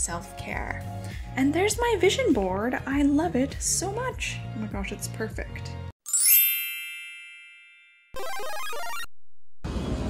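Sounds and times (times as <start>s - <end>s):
sparkle chime ding: 6.1s - 8.2s.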